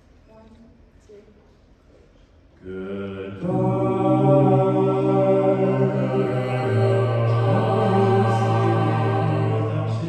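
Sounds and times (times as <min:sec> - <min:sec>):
a cappella group singing harmony: 0:02.6 - 0:10.0.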